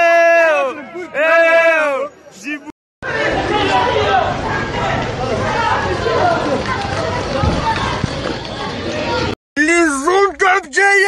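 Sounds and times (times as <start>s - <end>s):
crowd chattering: 0.0s - 9.9s.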